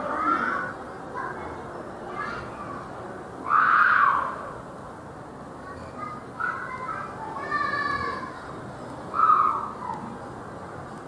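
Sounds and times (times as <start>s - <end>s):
faint background chatter: 0.0s - 11.0s
child shrieking: 3.4s - 4.4s, 9.1s - 9.8s.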